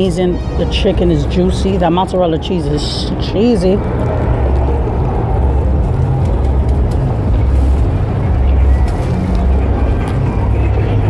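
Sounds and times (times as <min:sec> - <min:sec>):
traffic engines rumbling: 0:00.0 - 0:11.0.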